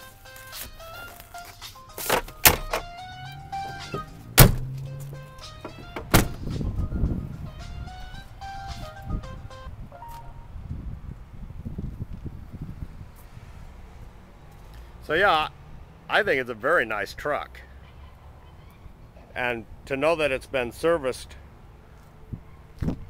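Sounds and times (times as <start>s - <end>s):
background music: 0.0s - 10.6s
low rumbling handling noise: 2.0s - 9.0s
truck door knocks: 2.1s - 3.0s, 3.6s - 6.6s.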